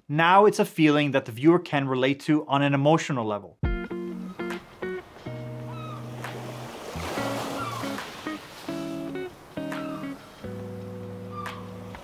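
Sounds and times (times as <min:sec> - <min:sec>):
acoustic guitar music: 0:03.7 - 0:12.0
gull cries: 0:04.0 - 0:04.6, 0:05.5 - 0:06.4, 0:07.1 - 0:08.4, 0:09.6 - 0:10.4, 0:11.0 - 0:12.0
ocean waves breaking: 0:04.0 - 0:12.0.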